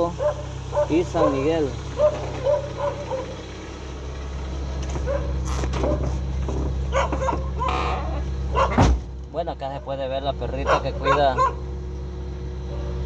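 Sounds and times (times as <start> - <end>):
dog barking and yipping: 0.0 - 3.5, 4.9 - 6.2, 6.9 - 8.9, 10.6 - 11.7.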